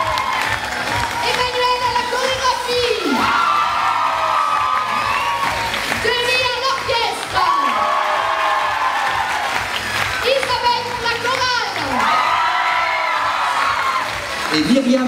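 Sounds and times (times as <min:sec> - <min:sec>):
crowd cheering and whooping: 0:00.0 - 0:15.0.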